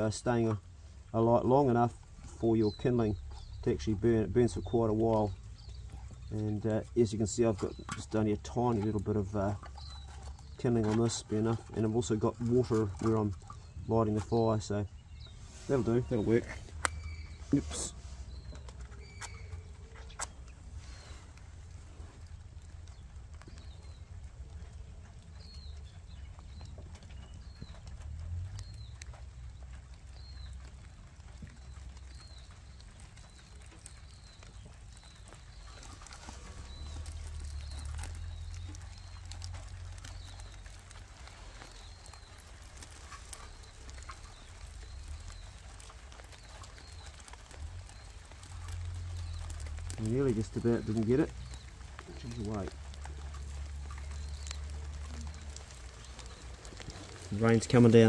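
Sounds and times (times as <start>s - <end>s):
bird chirping: 0.0s - 58.0s
low uneven rumble: 0.0s - 58.0s.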